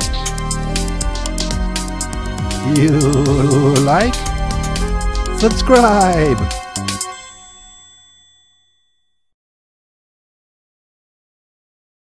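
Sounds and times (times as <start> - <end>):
bell-like ding ringing: 6.8 - 9.3.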